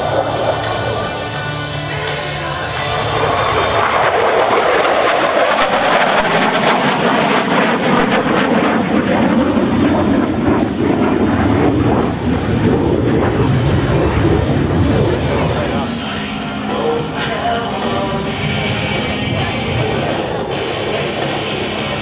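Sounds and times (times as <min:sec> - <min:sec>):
jet engine rushing: 0:00.0 - 0:22.0.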